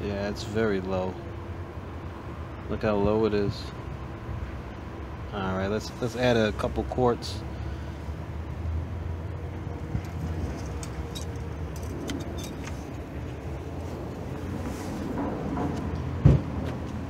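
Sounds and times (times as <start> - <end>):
low mechanical hum: 0.0 - 17.0.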